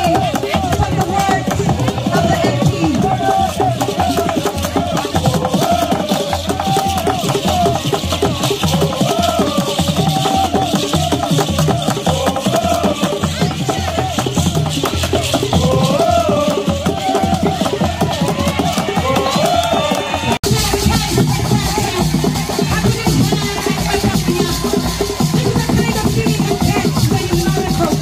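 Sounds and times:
slit drums beating: 0.0 - 28.0.

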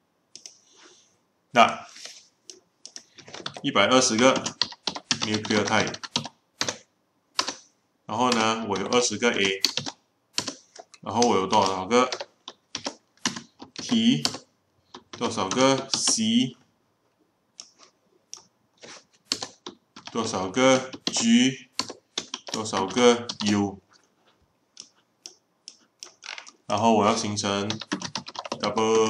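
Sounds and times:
computer keyboard keystrokes: 2.8 - 6.8, 7.4 - 7.7, 8.3 - 16.2, 19.2 - 23.6, 27.7 - 29.0.

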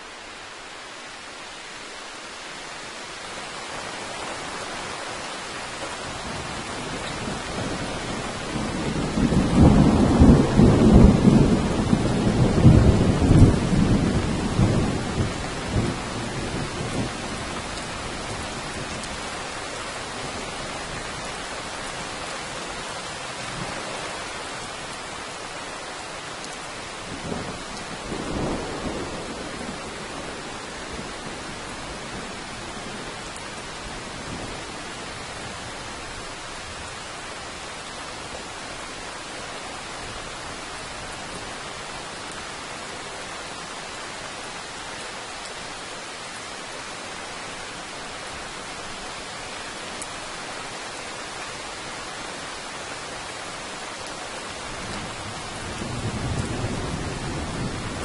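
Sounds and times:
steady rain: 0.0 - 58.0
thunder rumbling: 6.0 - 19.1, 54.7 - 58.0.

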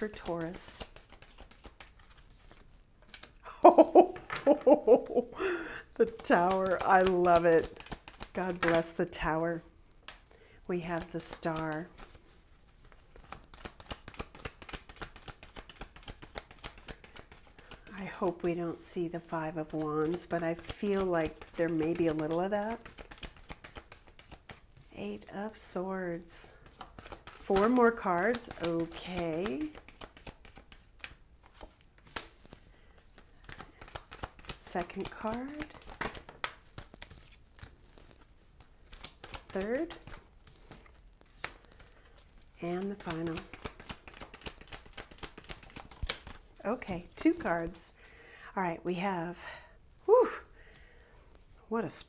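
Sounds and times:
cards being shuffled: 0.0 - 5.3, 6.0 - 9.4, 10.0 - 18.5, 19.6 - 24.9, 26.5 - 47.8.

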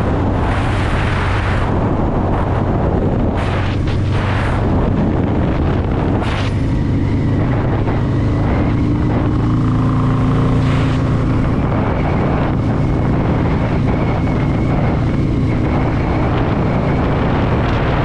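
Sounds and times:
motorcycle engine cruising: 0.0 - 18.0
wind noise on microphone: 0.0 - 18.0.

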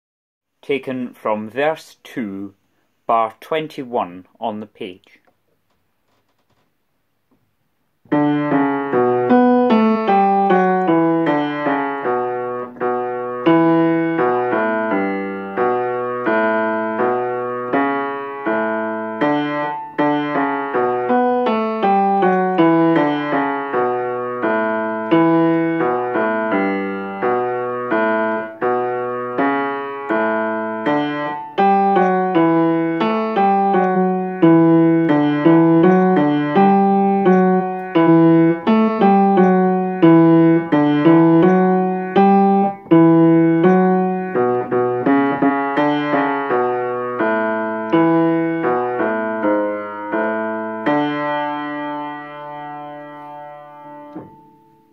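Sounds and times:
upright piano playing bass line: 8.1 - 54.9.

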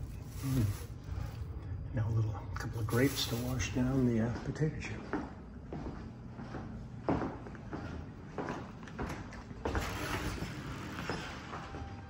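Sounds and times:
footsteps on hard floor: 4.3 - 9.9.

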